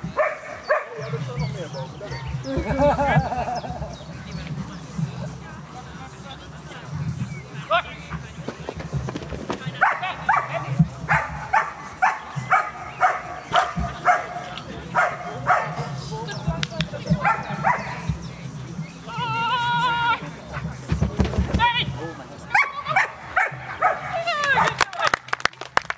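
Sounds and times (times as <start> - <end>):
dog barking excitedly: 0.1 - 1.1, 9.8 - 15.9, 17.2 - 18.0, 22.5 - 24.8.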